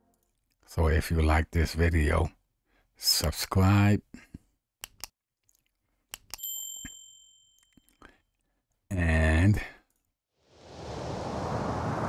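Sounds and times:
mouse clicks: 6.1 - 6.4
bell ding: 6.4 - 7.8.

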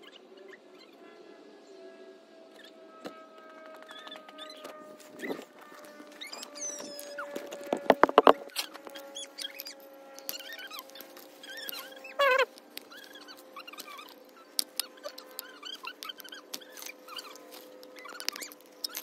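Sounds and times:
rubber squeaking: 5.2 - 19.0.

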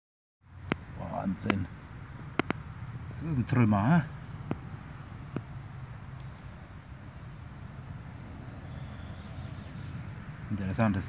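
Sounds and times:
low outdoor rumble: 0.4 - 11.0.

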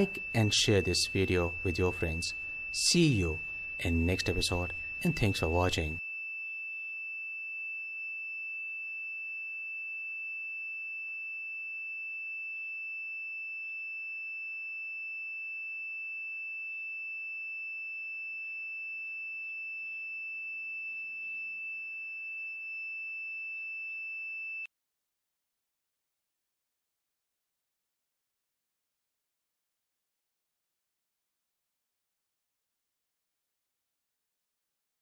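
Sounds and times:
buzzer high-pitched tone: 0.0 - 24.7.

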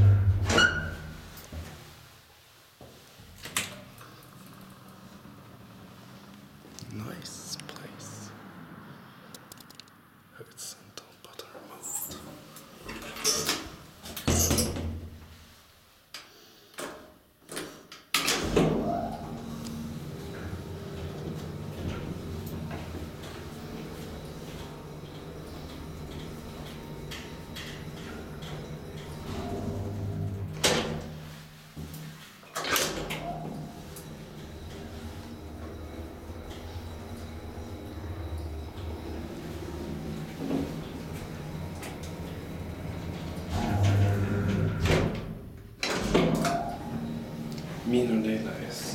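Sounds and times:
elevator doors knocking and clanking: 0.0 - 1.2, 18.2 - 31.2, 32.7 - 47.9
steady low hum: 33.8 - 45.9.

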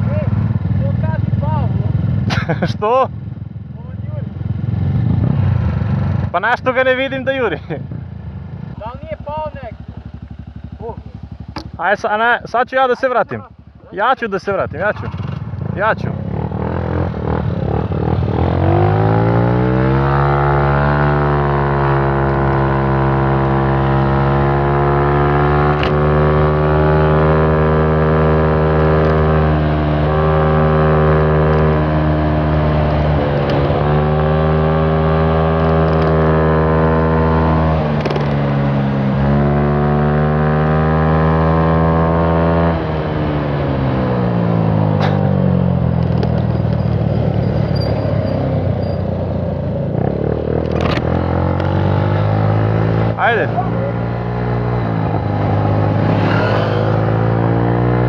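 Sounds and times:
scooter engine: 7.9 - 11.9, 14.8 - 58.0.

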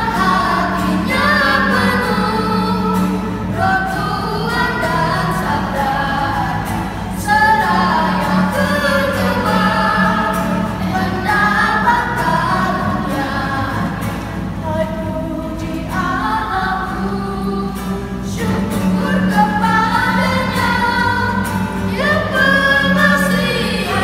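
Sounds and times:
woman and children singing hymn: 0.0 - 24.0.

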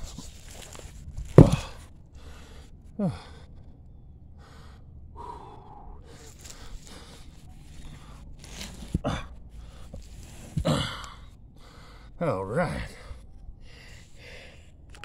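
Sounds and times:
man breathing hard: 0.6 - 15.0
man grunting: 3.0 - 3.3, 9.0 - 9.3, 10.6 - 11.2, 12.2 - 13.1.

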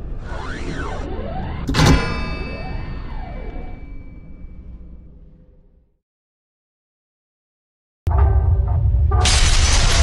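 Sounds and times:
soundtrack music: 8.1 - 10.0.

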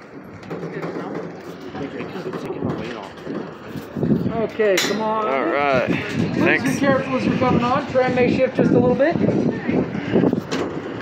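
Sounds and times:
indistinct voices talking: 0.5 - 10.5.

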